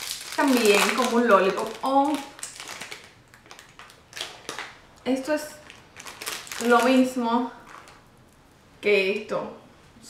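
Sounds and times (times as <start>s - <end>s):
plastic candy wrapper crinkling: 0.0s - 8.1s.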